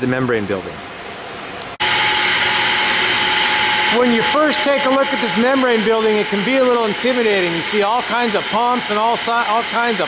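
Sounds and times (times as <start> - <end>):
machinery rushing hum: 0.4 - 10.0
high machinery whine: 0.8 - 10.0.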